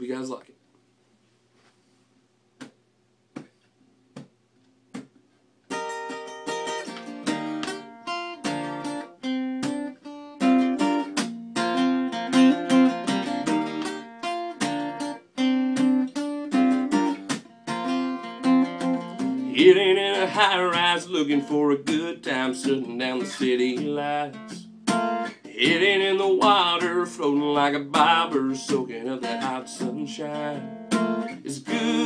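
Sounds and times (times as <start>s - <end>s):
acoustic guitar strumming chords: 5.7s - 32.0s.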